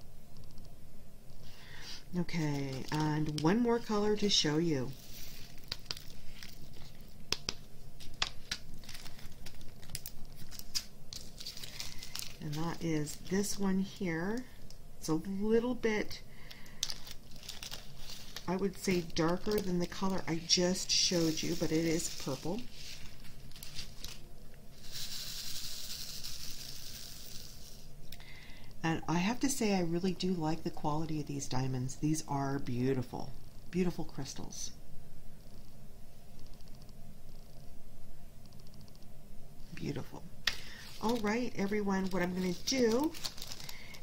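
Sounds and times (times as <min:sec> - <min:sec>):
plastic bag crinkling: 0:01.7 - 0:14.8, 0:15.6 - 0:27.9, 0:40.4 - 0:44.0
beads rattling in plastic tray: 0:24.8 - 0:27.8.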